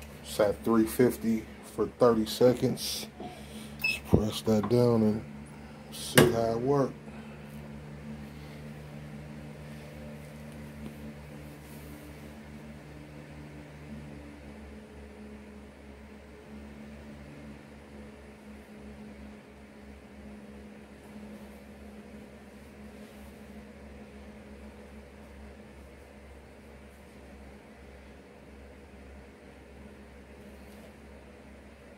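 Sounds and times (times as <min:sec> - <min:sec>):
low electrical hum: 0:00.0 - 0:31.9.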